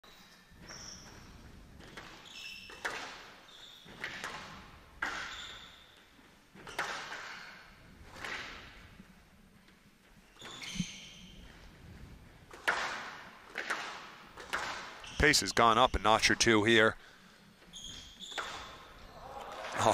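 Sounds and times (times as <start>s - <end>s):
court shoes squeaking: 0.0s - 8.9s, 10.0s - 11.8s, 12.5s - 16.6s, 17.5s - 19.9s
squash ball hits echoing: 12.5s - 15.0s, 18.3s - 19.8s.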